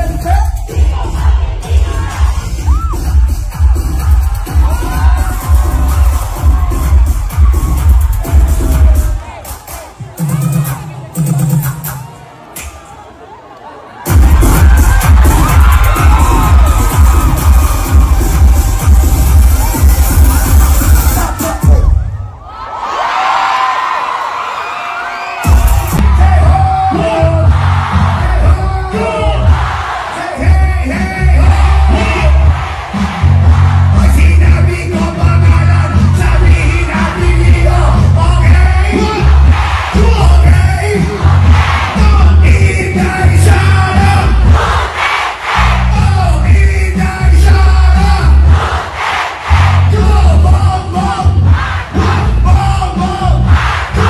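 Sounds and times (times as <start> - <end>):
live concert music with heavy bass: 0.0 - 22.7, 23.5 - 54.0
crowd cheering: 0.7 - 34.4, 36.8 - 46.4.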